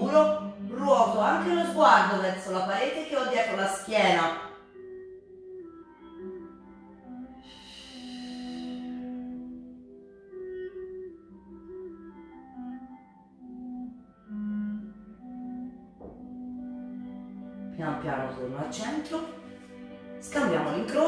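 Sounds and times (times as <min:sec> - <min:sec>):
soft instrumental music: 0:00.0 - 0:21.0.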